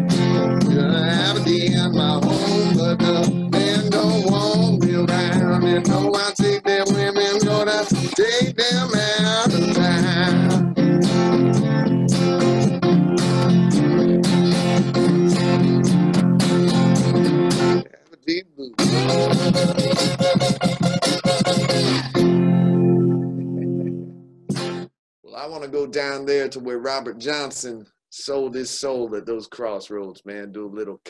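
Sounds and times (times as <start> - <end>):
blues guitar strummed and picked: 0.0 - 18.0, 18.8 - 24.9
man singing: 0.5 - 12.3, 18.8 - 19.8.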